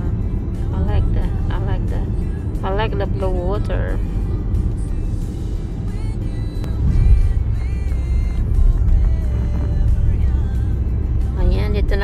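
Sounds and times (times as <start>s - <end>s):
car road and engine rumble: 0.0s - 12.0s
music playing: 0.0s - 12.0s.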